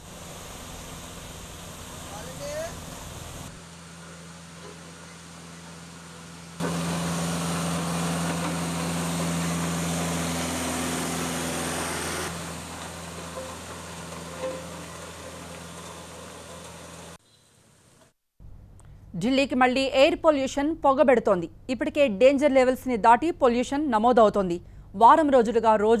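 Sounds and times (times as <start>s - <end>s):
diesel engines running: 0.0s - 17.2s.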